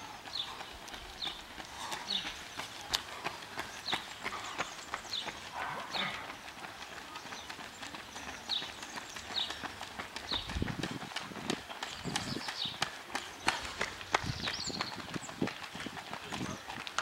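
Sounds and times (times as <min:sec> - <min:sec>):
running footsteps on asphalt: 0:00.0 - 0:17.0.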